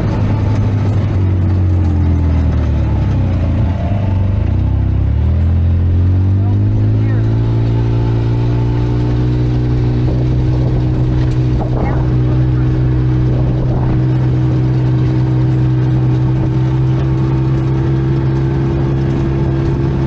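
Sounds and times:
utility vehicle engine: 0:00.0 - 0:20.0.

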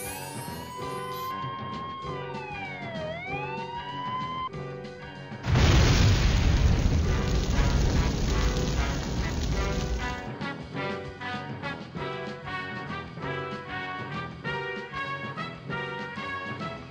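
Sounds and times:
siren wail: 0:00.1 - 0:04.5
explosion sound effect: 0:05.4 - 0:10.3.

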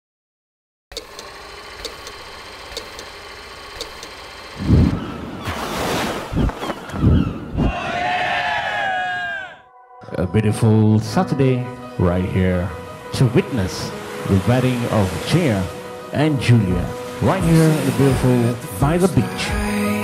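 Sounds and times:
deep boom: 0:04.6 - 0:05.1
low thumps: 0:04.6 - 0:05.4, 0:06.2 - 0:07.9
falling pitched glides: 0:04.6 - 0:07.9.

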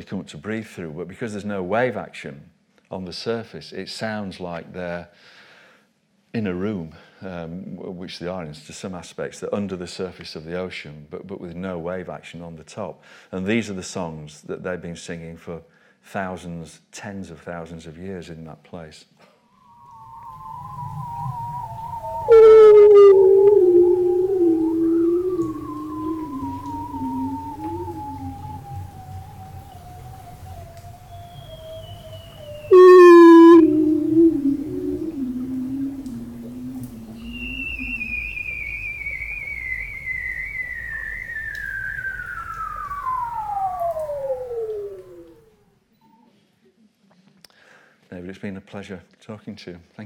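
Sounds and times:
seals trilling underwater: 0:19.7 - 0:45.4
short high seal calls: 0:20.6 - 0:39.6.

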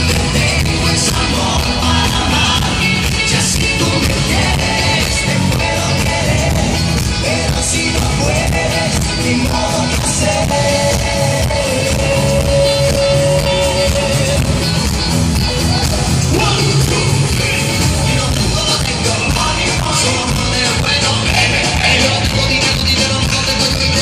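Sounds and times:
live band with singers: 0:00.0 - 0:24.0.

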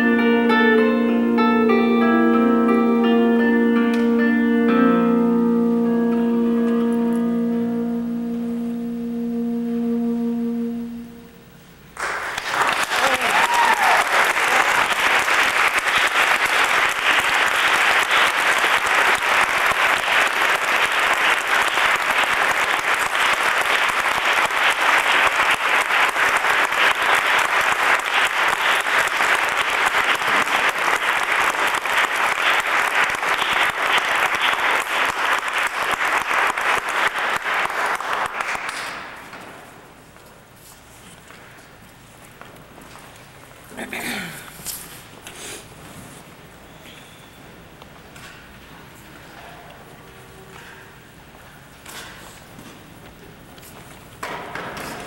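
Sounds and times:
guitar: 0:00.0 - 0:11.6
soprano saxophone note: 0:00.0 - 0:11.7
audience applause: 0:12.0 - 0:39.7.

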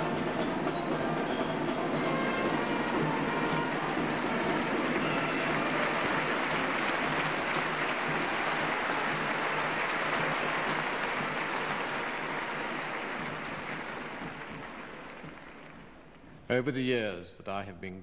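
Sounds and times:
audience applauding: 0:00.0 - 0:16.4.

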